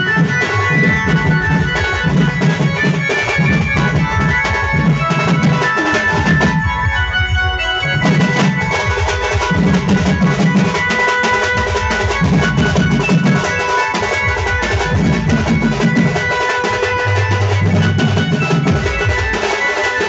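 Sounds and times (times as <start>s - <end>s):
sustained melody line: 0.0s - 20.0s.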